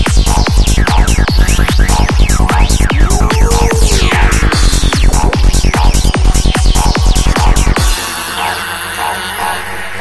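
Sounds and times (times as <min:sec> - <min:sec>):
sustained synth texture: 0:00.0 - 0:10.0.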